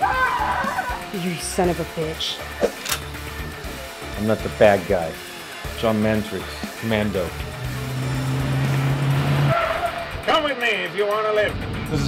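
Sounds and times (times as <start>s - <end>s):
car engine and road noise: 0.6s - 10.6s, 11.4s - 12.0s.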